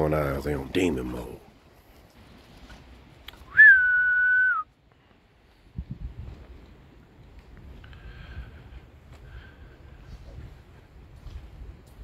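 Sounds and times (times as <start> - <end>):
person whistling a note: 3.5 - 4.7.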